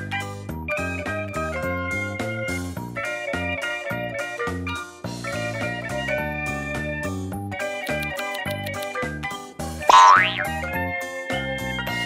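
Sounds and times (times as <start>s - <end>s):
bouncy background music: 0.0s - 12.0s
cartoon boing sound effect: 9.9s - 10.7s.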